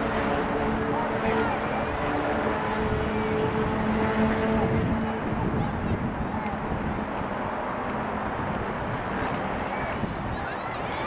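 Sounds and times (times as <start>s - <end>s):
low drone: 0.0s - 11.0s
outdoor noise: 0.0s - 11.0s.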